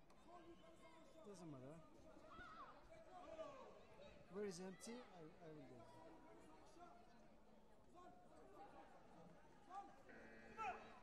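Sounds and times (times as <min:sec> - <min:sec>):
faint voices in a hall: 0:00.0 - 0:11.0.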